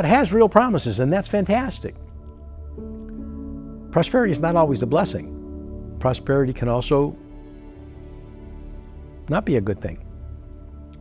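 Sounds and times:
soft sustained chords: 0.0s - 11.0s.

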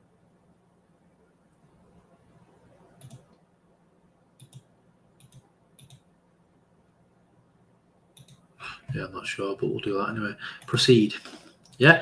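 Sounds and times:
computer mouse buttons clicking: 3.0s - 3.4s, 4.4s - 6.1s, 8.2s - 8.4s.

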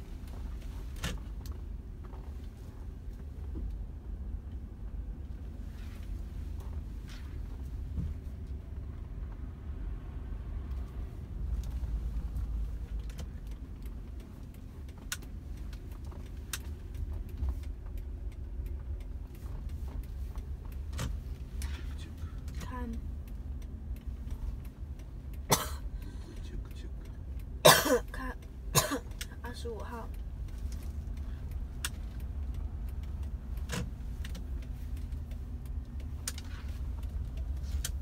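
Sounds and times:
car engine and road rumble: 0.0s - 38.0s
person clearing throat: 25.5s - 25.8s, 27.6s - 28.1s, 28.8s - 29.1s.

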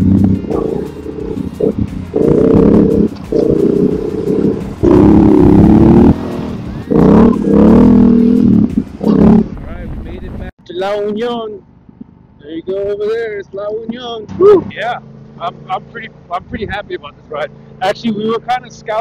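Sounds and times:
motorcycle engine revving: 0.0s - 10.4s.

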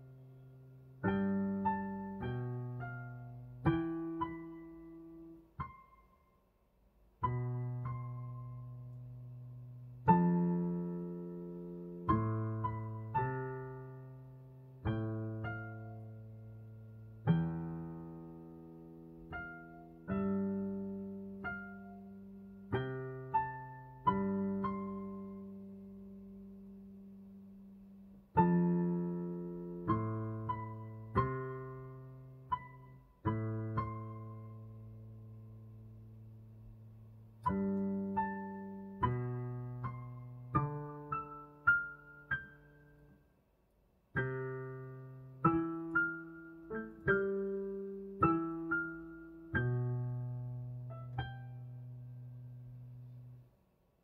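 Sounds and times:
digital piano playing slowly: 0.0s - 6.4s, 7.2s - 43.2s, 44.1s - 53.4s.

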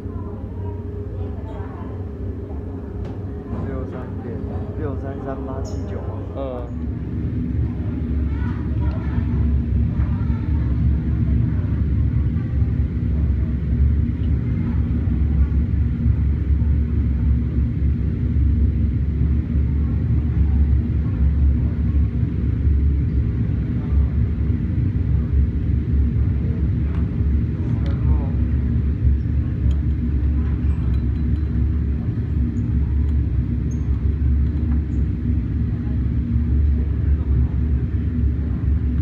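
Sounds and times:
ventilation rumble: 0.0s - 39.0s.

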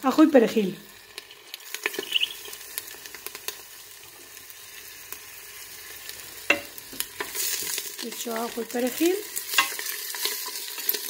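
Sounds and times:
chicken sizzling in oil: 0.0s - 11.0s.

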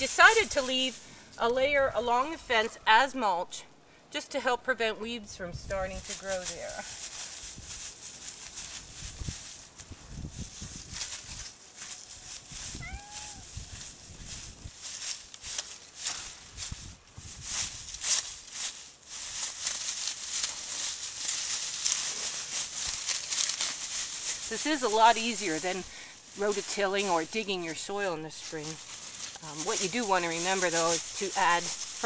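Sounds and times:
dry straw rustling and crackling: 0.0s - 2.6s, 5.6s - 32.0s.

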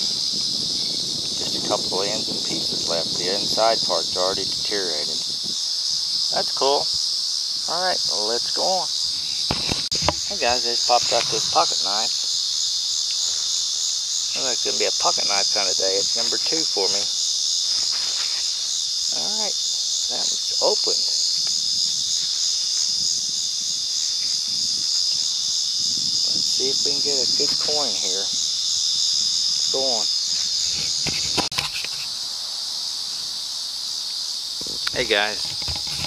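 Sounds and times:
crickets chirping: 0.0s - 36.0s
high-pitched insect chorus: 0.0s - 36.0s.

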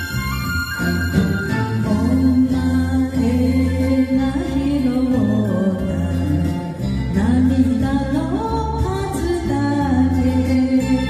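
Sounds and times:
karaoke backing track: 0.0s - 11.0s
woman singing ballad: 1.7s - 11.0s.

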